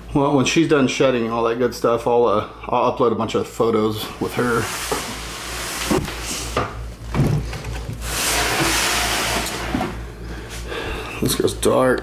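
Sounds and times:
plastic tub scraping slide: 0:04.2 - 0:06.7, 0:07.4 - 0:10.1.

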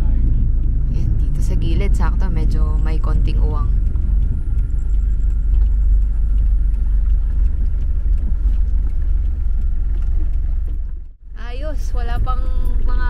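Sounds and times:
van engine and road rumble: 0:00.0 - 0:13.0.

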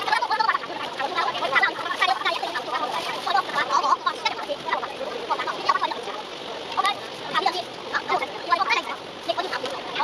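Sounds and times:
sped-up high-pitched voices: 0:00.0 - 0:10.0.

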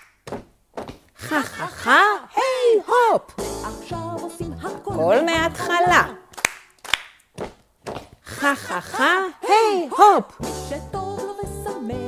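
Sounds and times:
hand claps: 0:00.0 - 0:00.4, 0:06.3 - 0:07.3.

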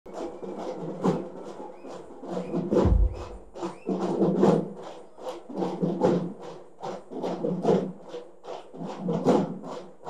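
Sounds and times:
drums and metal percussion: 0:00.1 - 0:10.0
deep drum boom: 0:02.8 - 0:03.6.

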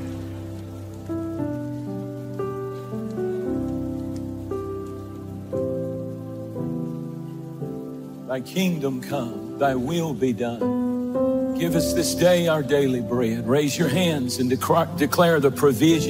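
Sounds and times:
faint steady hiss: 0:00.0 - 0:16.0
soft keyboard chords: 0:00.0 - 0:16.0.

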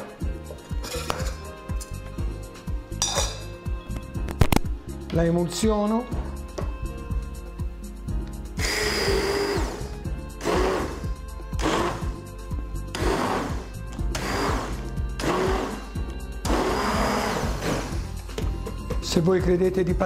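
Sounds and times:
immersion blender whirring: 0:08.6 - 0:12.2, 0:12.9 - 0:18.1.

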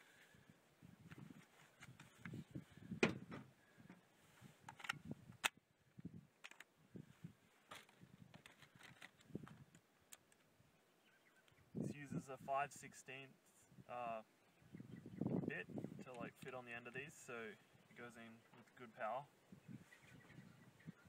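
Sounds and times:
light handling clicks and knocks: 0:06.4 - 0:06.7, 0:07.7 - 0:10.5.

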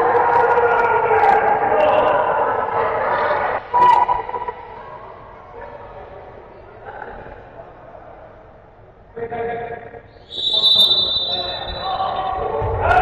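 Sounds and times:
crowd shouting and cheering: 0:00.0 - 0:05.3, 0:10.3 - 0:13.0
loud call: 0:10.3 - 0:12.6.

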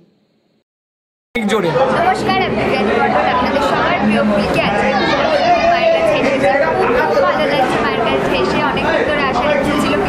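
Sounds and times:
background voices chattering: 0:01.4 - 0:10.0
woman talking: 0:03.6 - 0:04.9.

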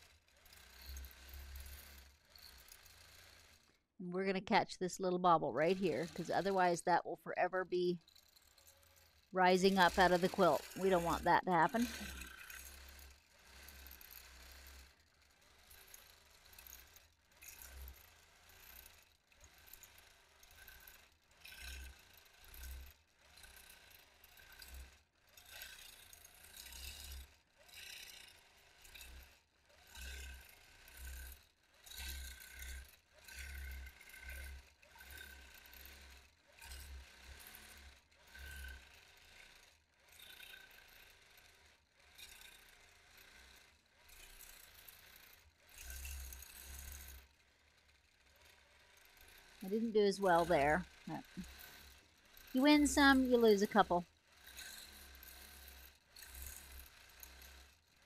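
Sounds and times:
quilting machine stitching: 0:00.1 - 0:03.8, 0:05.0 - 0:07.1, 0:08.1 - 0:27.1, 0:36.8 - 0:57.6.

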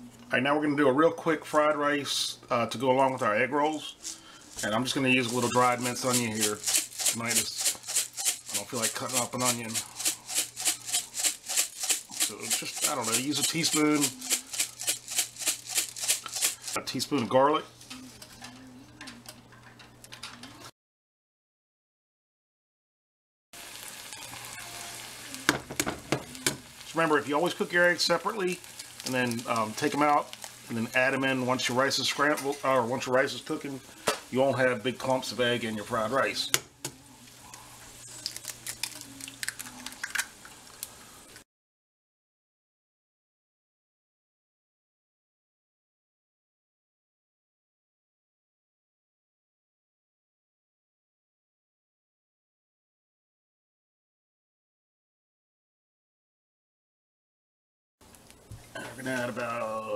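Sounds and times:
eggs frying in oil: 0:04.0 - 0:16.8, 0:23.6 - 0:41.4, 0:58.0 - 0:59.6
spice jar rattling: 0:04.0 - 0:16.8.

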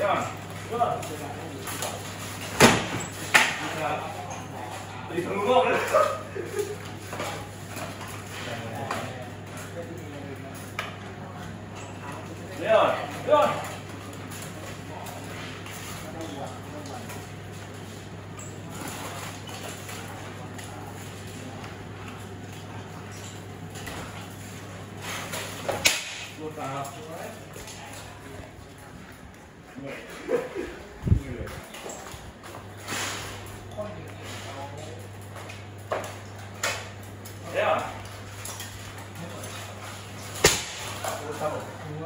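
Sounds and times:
steady hum: 0:00.0 - 0:42.0.

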